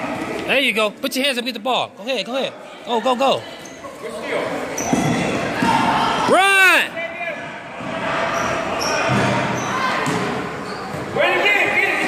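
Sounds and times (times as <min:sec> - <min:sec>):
spectators chattering and shouting: 0:00.0 - 0:12.0.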